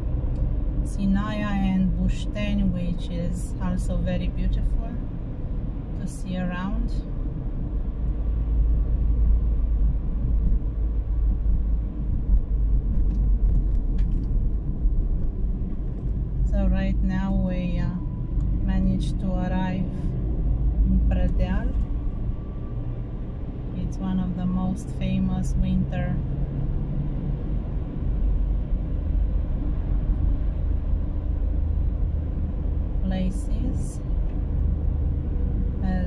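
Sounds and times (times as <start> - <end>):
car engine and tyres rumbling: 0.0 - 36.0.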